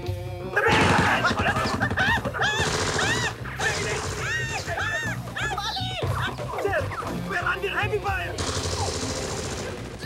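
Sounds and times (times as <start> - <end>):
rapid gunfire: 0.7 - 5.0, 8.4 - 10.0.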